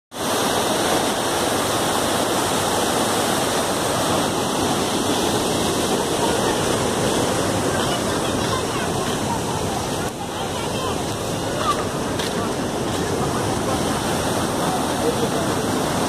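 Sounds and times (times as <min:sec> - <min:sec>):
water pouring through sluice gates: 0:00.2 - 0:16.0.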